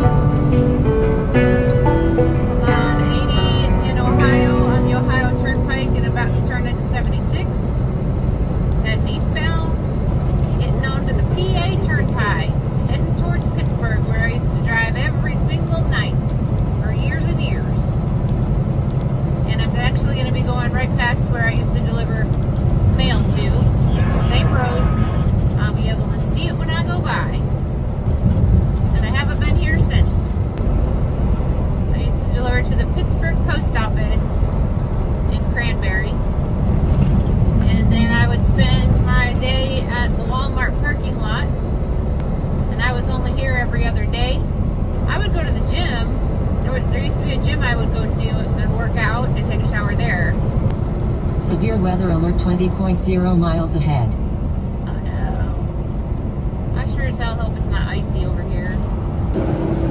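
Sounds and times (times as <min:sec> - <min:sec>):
truck engine and tyre drone: 0:00.0 - 0:59.9.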